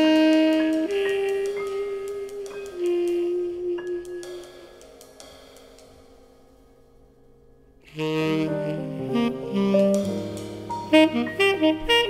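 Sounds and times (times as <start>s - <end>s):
tenor saxophone sustained note: 0.0s - 4.8s, 7.8s - 12.0s
soft held jazz tones: 0.0s - 12.0s.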